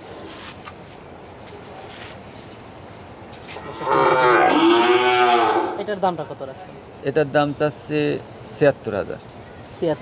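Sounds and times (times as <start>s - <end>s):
cow mooing: 3.6s - 5.9s.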